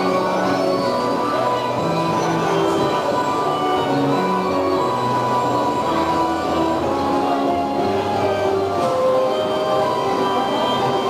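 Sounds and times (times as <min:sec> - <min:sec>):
carousel music: 0:00.0 - 0:11.0.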